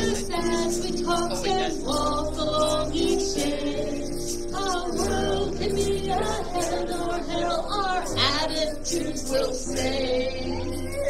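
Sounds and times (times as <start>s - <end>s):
woman singing: 0.0s - 4.0s, 4.6s - 11.0s
instrumental accompaniment: 0.0s - 11.0s.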